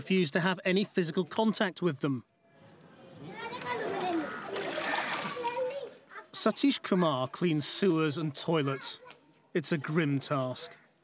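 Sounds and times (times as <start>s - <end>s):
voices in background: 0.0s - 11.0s
water and sludge splashing: 3.8s - 5.6s.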